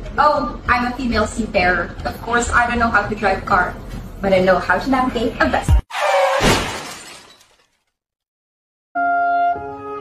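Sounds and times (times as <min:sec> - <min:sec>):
loud shattering crash: 0:06.0 - 0:07.8.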